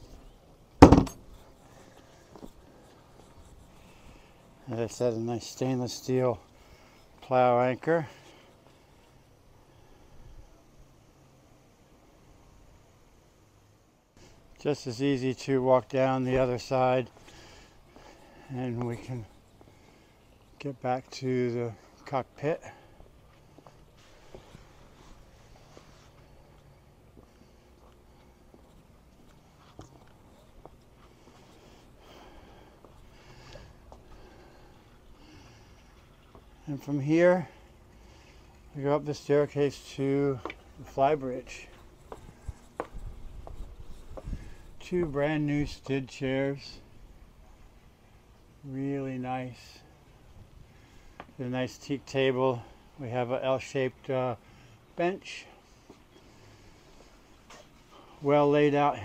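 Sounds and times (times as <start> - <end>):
hatch lid clunk: 0.8 - 1.3.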